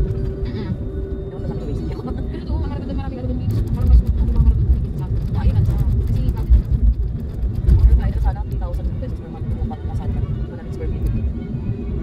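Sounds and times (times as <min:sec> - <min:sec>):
car cabin rumble: 0:01.8 - 0:11.3.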